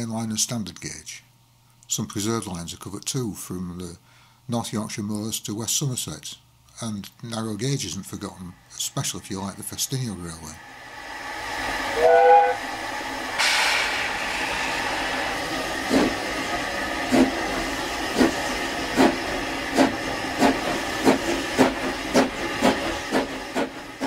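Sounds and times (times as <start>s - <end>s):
steam locomotive chuffing: 10.3s - 24.0s
steam hiss: 10.4s - 24.0s
steam locomotive two-note whistle: 11.9s - 12.8s.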